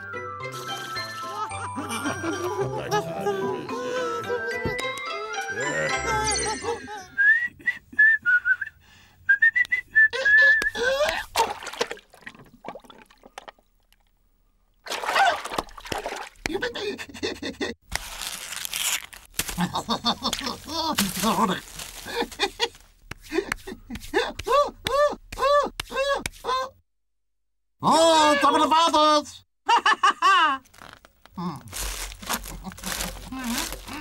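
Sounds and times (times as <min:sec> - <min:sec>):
bright cartoon music cue: 0:00.0 - 0:07.0
whistled tune: 0:07.2 - 0:10.8.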